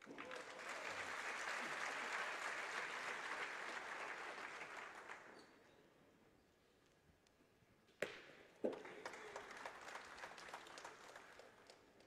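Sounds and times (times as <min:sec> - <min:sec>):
crowd applauding: 0:00.0 - 0:05.3, 0:08.7 - 0:11.8.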